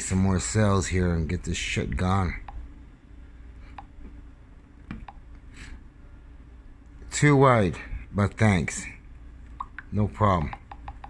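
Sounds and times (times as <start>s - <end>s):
low steady hum: 0.0s - 11.0s.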